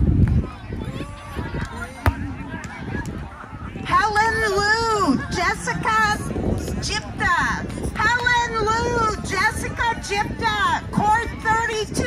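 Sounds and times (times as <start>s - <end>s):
faint distant voices: 0.1s - 12.0s.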